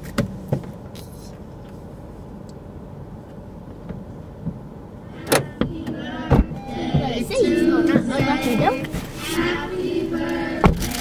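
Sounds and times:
low rumble inside parked car: 0:00.0 - 0:11.0
voices: 0:05.2 - 0:11.0
car door opening knocks and clicks: 0:05.3 - 0:07.2.

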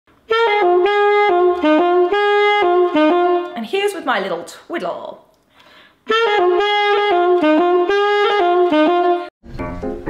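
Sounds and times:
saxophone solo phrase: 0:00.3 - 0:03.6, 0:06.1 - 0:09.3.

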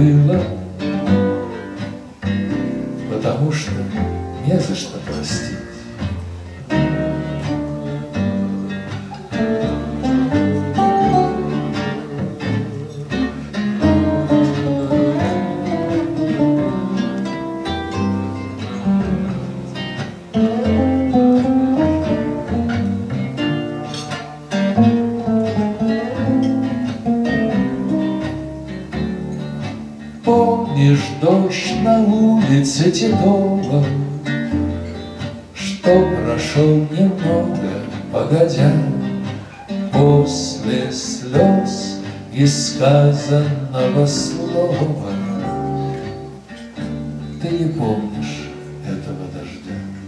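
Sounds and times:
double bass: 0:00.0 - 0:50.0
nylon-string acoustic guitars: 0:00.0 - 0:50.0.

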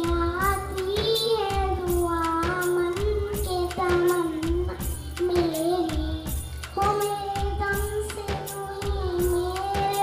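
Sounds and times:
child singing into microphone: 0:00.0 - 0:10.0
percussion beat: 0:00.0 - 0:10.0.

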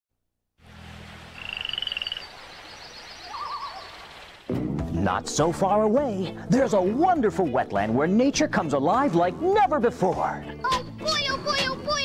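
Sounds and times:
faint high chirps: 0:01.4 - 0:04.3
bird trilling: 0:01.4 - 0:04.4
short warbling bird call: 0:01.4 - 0:04.4.

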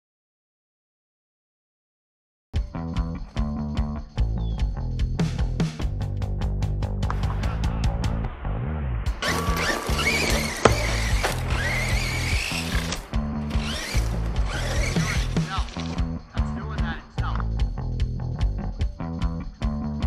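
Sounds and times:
rock music with guitar and bass: 0:02.6 - 0:20.0
electric motor whining: 0:09.2 - 0:16.1
tyres running on dirt: 0:09.2 - 0:17.6.

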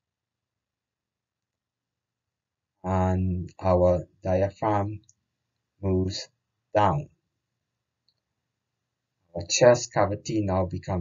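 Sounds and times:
faint low hum: 0:02.9 - 0:05.0
spoken word: 0:02.9 - 0:05.0, 0:05.8 - 0:06.2, 0:06.8 - 0:07.0, 0:09.4 - 0:11.0.

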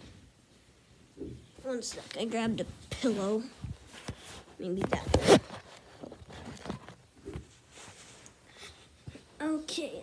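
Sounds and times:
fabric rustling: 0:01.7 - 0:09.4.

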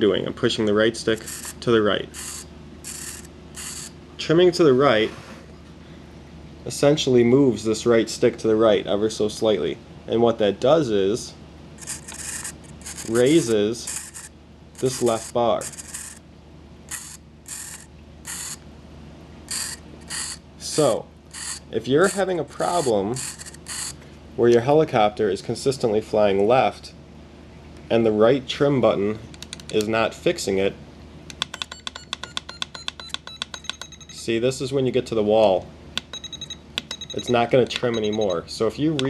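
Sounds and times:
raspy mechanical noises: 0:00.0 - 0:04.0, 0:11.8 - 0:18.7, 0:19.4 - 0:24.7
long high steady beep: 0:31.7 - 0:34.2, 0:36.1 - 0:38.5.

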